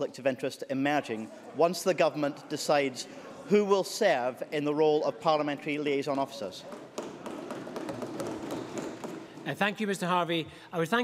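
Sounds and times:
hubbub in large chamber: 0.0 - 11.0.

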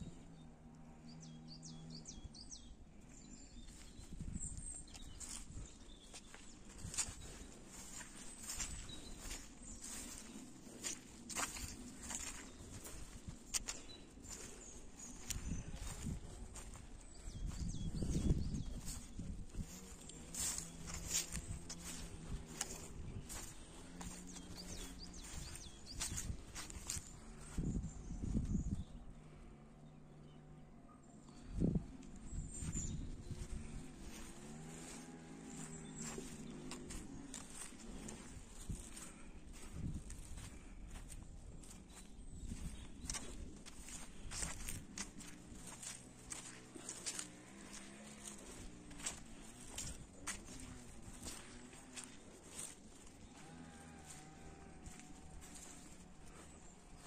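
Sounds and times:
footsteps through grass: 3.2 - 28.8, 31.4 - 57.0
wind rumble on microphone: 3.4 - 29.4, 31.3 - 53.4, 54.0 - 57.0.

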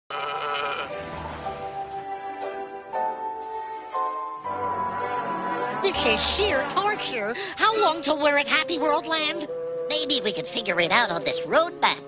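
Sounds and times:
cartoon soundtrack music: 0.1 - 12.0.

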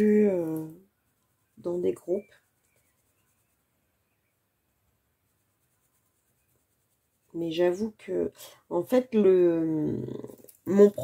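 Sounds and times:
pencil scratching on paper: 5.2 - 8.2.

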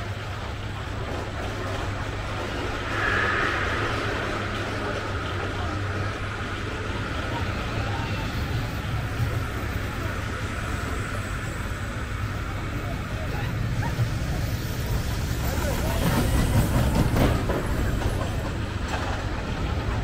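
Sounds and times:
roller coaster rolling on track: 0.0 - 20.0.

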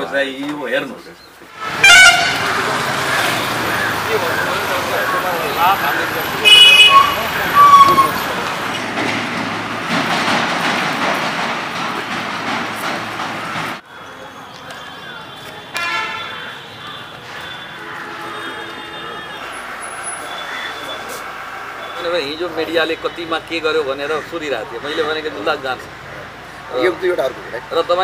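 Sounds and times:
people talking: 0.0 - 1.2, 1.8 - 8.8, 13.9 - 17.6, 18.2 - 28.0
street traffic: 0.0 - 28.0
vehicle horns honking: 1.5 - 8.8, 15.6 - 23.5.

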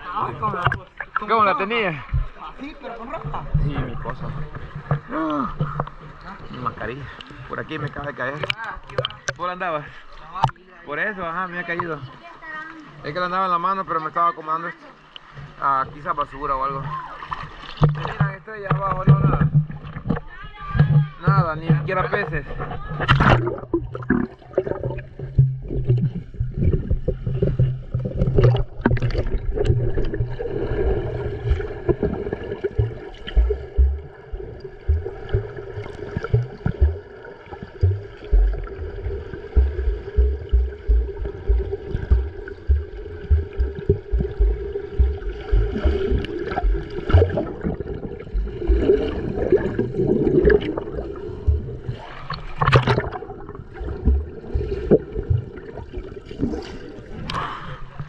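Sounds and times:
underwater bubbling and churning: 0.0 - 10.7, 14.9 - 58.0
splashes: 11.6 - 58.0
steady underwater hum: 22.0 - 58.0
dull thumps from kicking: 32.8 - 37.1, 37.8 - 47.5.

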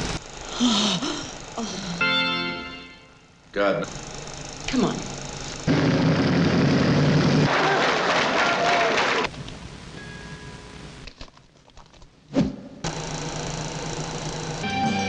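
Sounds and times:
motorcycle engine running loud: 5.6 - 7.5.

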